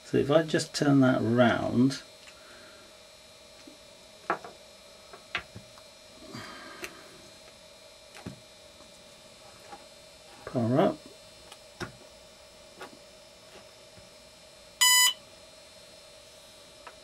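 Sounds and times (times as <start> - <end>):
faint electrical hum: 0.0 - 17.0.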